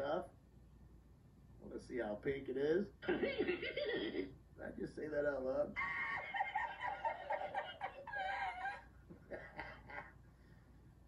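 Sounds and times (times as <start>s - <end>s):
man laughing hard: 5.8s - 10.1s.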